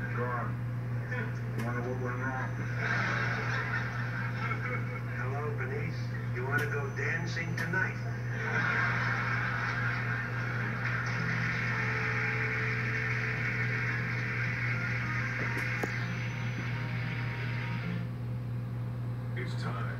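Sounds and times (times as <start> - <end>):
tv speaker noisy wash: 0.0 - 18.6
low hum: 0.0 - 19.4.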